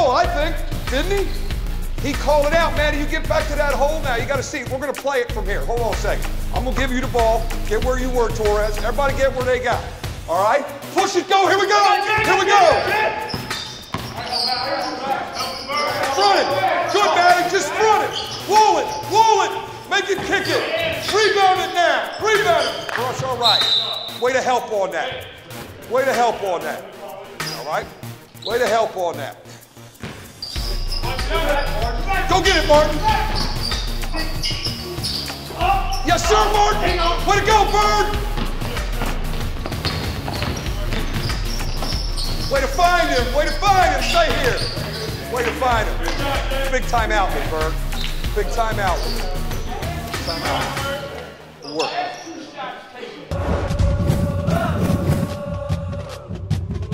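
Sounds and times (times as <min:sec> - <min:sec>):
music with pulsing beat: 0:00.0 - 0:10.4, 0:29.2 - 0:51.0
sneakers squeaking on court: 0:12.2 - 0:16.6, 0:18.0 - 0:19.1, 0:20.0 - 0:21.4, 0:22.1 - 0:24.2, 0:27.4 - 0:28.8, 0:29.8 - 0:31.8, 0:32.5 - 0:36.2, 0:38.4 - 0:46.2, 0:47.8 - 0:48.3, 0:48.9 - 0:52.4
faint players' voices: 0:30.6 - 0:53.3
basketball bouncing on hardwood: 0:38.4 - 0:42.1.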